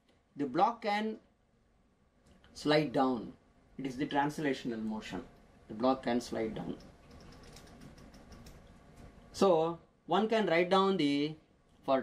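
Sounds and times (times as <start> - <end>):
low room hiss: 0.0 - 12.0
rapid light clicks: 6.7 - 9.1.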